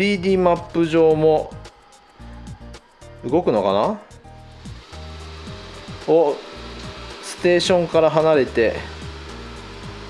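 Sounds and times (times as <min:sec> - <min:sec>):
background music with bass line: 0:00.0 - 0:10.0
robot vacuum fan whirring: 0:00.7 - 0:10.0.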